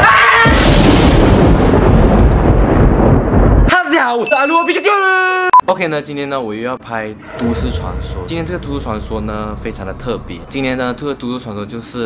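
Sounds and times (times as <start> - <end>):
deep boom rumble: 0.5 - 3.7, 7.2 - 11.5.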